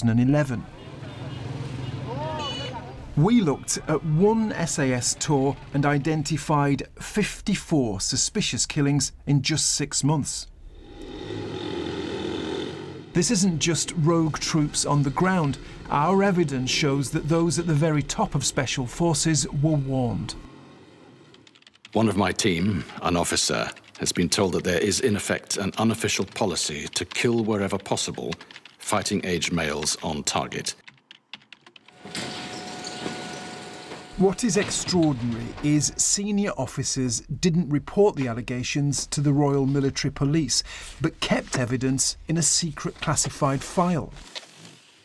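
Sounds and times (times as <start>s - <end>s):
street traffic noise: 0.0s - 6.0s, 11.1s - 22.0s
keystroke clicks: 21.3s - 22.1s, 25.6s - 28.9s, 30.8s - 32.0s.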